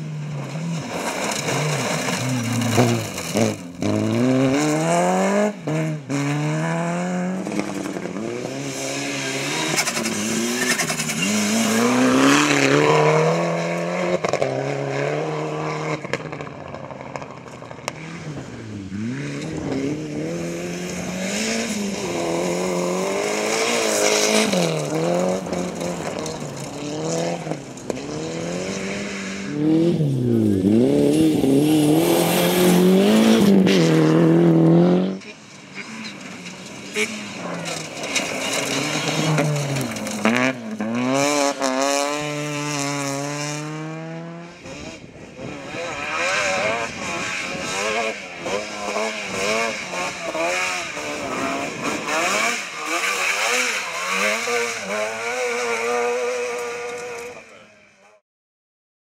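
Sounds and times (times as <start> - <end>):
rally car engines revving: 0.0 - 58.2.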